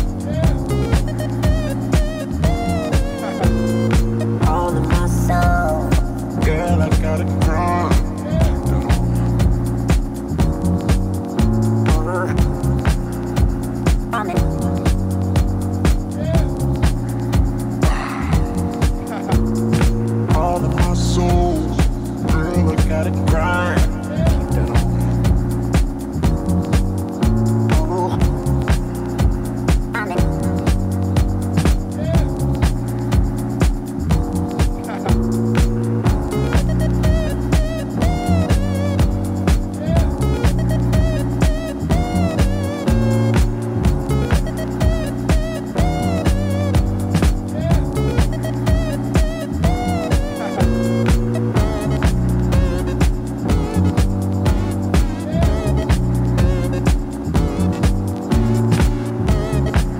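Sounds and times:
deep house music: 0.0s - 59.9s.

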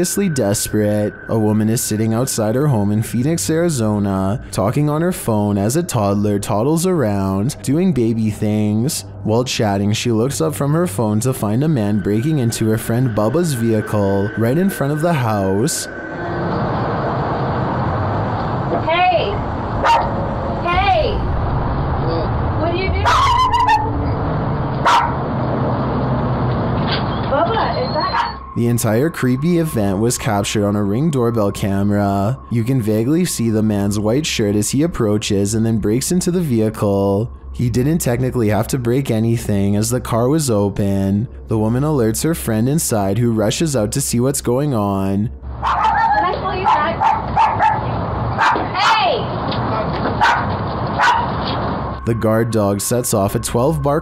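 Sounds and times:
people's voices: 0.0s - 16.4s, 27.3s - 47.2s, 52.0s - 54.0s
dog barking: 19.8s - 20.2s, 23.0s - 23.9s, 24.8s - 25.2s, 28.0s - 28.4s, 45.6s - 49.1s, 49.8s - 51.4s.

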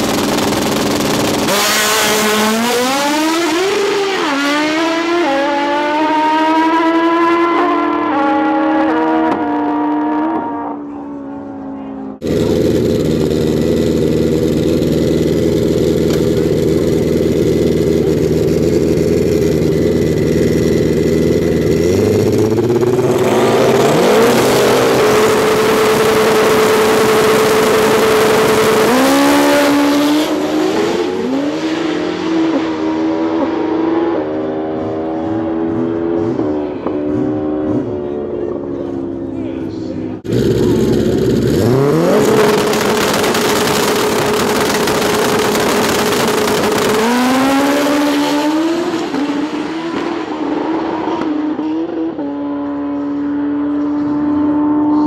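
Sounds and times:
motorcycles idling and revving: 0.0s - 9.6s, 10.4s - 55.0s
motorcycle accelerating through gears: 0.0s - 39.2s, 40.1s - 55.0s
motorcycles racing away: 0.0s - 55.0s.

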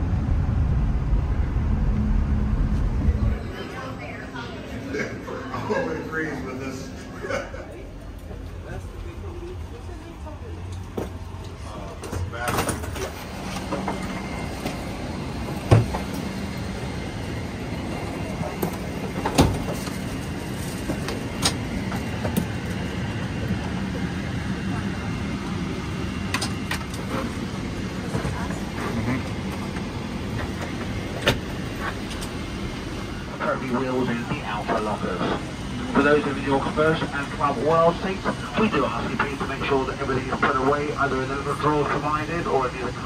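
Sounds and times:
passengers' voices: 0.0s - 43.0s.

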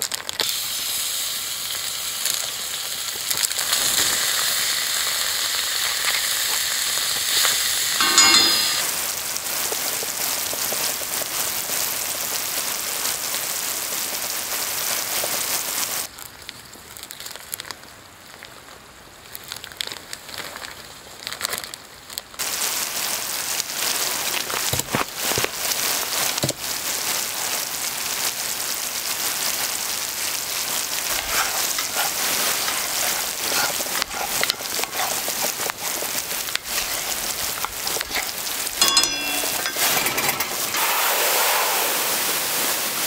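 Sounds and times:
meat sizzling in a skillet: 0.0s - 16.1s, 22.4s - 43.0s
faint crackles: 10.2s - 41.0s.

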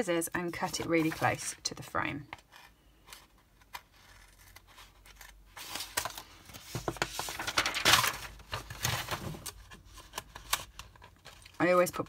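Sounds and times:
plastic sheet crinkling: 5.6s - 9.5s.

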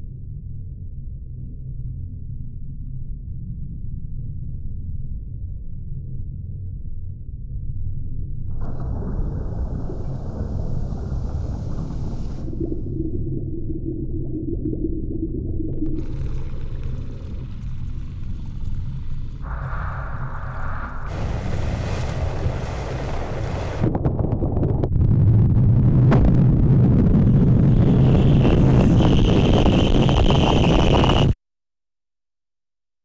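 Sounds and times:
low rumbling drone: 0.1s - 31.3s
shifting noise layers: 8.6s - 31.4s.

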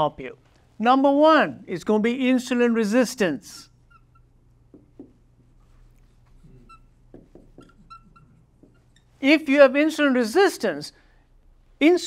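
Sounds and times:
felt tip squeaks: 3.7s - 4.5s, 5.6s - 9.2s
marker scratching on whiteboard: 3.8s - 9.2s.

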